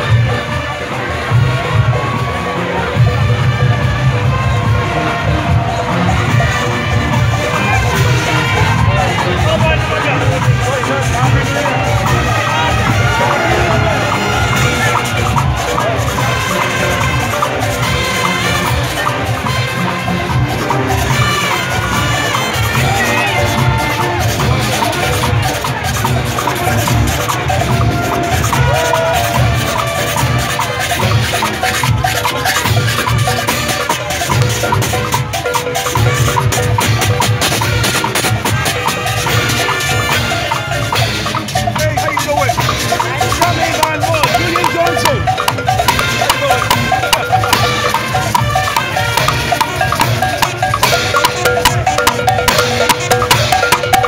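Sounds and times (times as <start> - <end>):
cowbells clanging: 0.0 - 54.0
horns: 0.0 - 54.0
pounding drums: 0.0 - 54.0.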